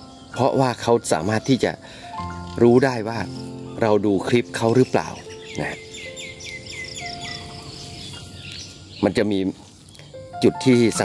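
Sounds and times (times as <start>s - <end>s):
bird chirping: 0.0s - 11.0s
soft background music: 0.0s - 11.0s.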